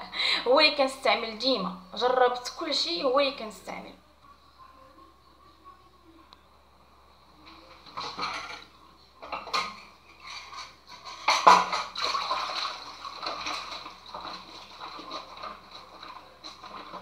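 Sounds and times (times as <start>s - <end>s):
dishes and utensils clinking: 7.7s - 17.0s
dishes clattering: 7.8s - 17.0s
sponge scrubbing a ceramic mug: 12.7s - 17.0s.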